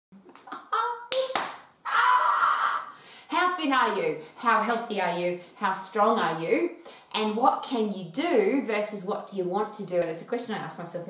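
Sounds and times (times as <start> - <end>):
hand claps: 0.3 - 1.7.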